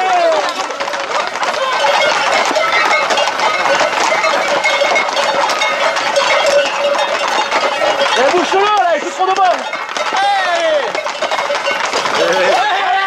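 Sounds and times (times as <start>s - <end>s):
horse hooves clattering on asphalt: 0.0s - 13.0s
people talking: 8.0s - 11.0s, 12.1s - 13.0s.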